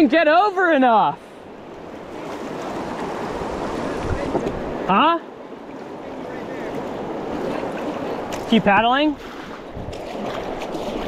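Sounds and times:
whitewater rushing: 0:00.0 - 0:11.0.

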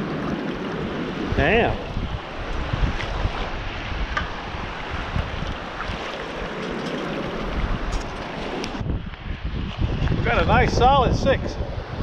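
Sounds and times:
small waves washing: 0:00.0 - 0:10.0
wind noise on microphone: 0:00.0 - 0:12.0.

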